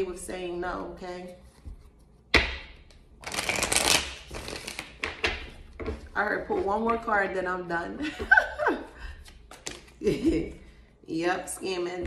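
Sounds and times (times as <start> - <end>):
cards shuffling: 3.2 - 5.6.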